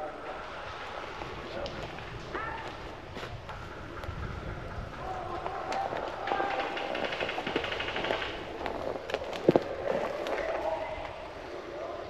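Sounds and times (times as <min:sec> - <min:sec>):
voices: 0:00.0 - 0:12.0
footsteps in woods: 0:00.9 - 0:11.5
airsoft gunfire bursts: 0:06.2 - 0:08.5.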